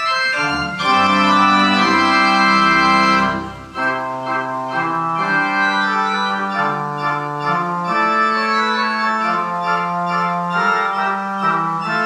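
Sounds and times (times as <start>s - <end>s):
organ playing held chords: 0.0s - 12.0s.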